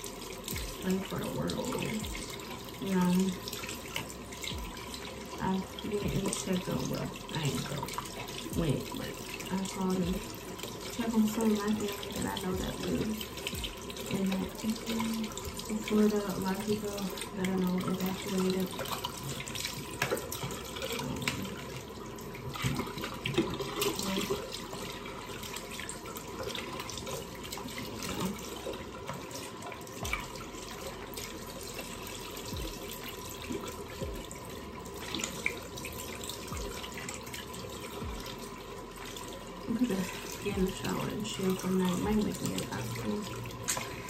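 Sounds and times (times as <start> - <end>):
small knocks and splashes: 0.0 - 44.0.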